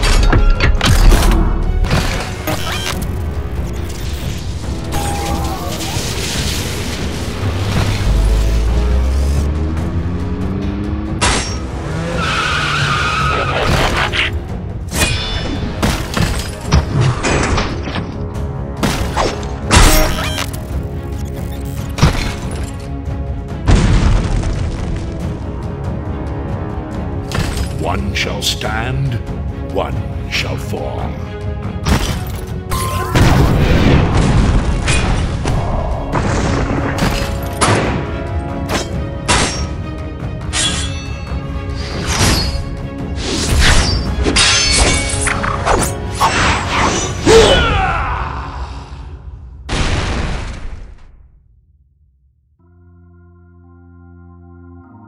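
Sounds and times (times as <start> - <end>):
background music: 0.0 - 49.8, 52.6 - 55.0.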